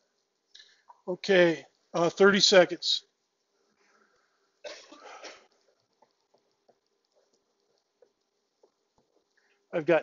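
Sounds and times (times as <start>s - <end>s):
person coughing: 4.6s - 5.5s.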